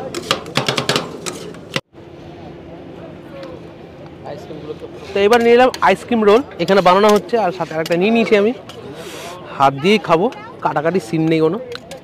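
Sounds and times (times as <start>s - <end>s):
metal spatulas clacking on steel plate: 0.0s - 1.6s.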